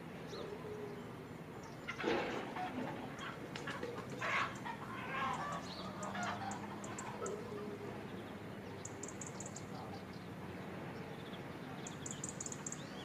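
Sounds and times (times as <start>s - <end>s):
small birds chirping: 0.1s - 2.1s, 2.9s - 13.0s
chickens clucking: 1.6s - 10.1s.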